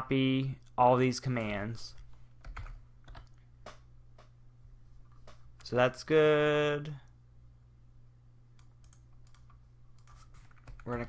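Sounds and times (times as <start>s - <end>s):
low steady hum: 0.0s - 11.0s
computer mouse clicks: 8.6s - 10.9s.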